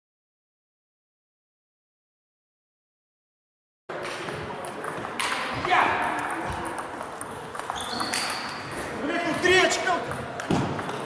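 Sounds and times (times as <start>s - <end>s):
voices in a hall: 3.9s - 11.0s
table tennis ball clicks: 4.0s - 8.9s.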